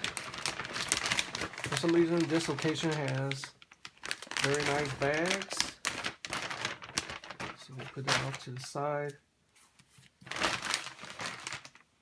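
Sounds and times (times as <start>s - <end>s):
plastic bag crinkling: 0.0s - 8.8s, 10.2s - 12.0s.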